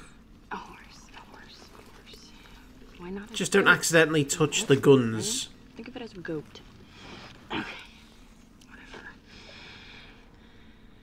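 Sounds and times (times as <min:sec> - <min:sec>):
faint whispering voice: 0:00.0 - 0:02.4, 0:08.6 - 0:09.3.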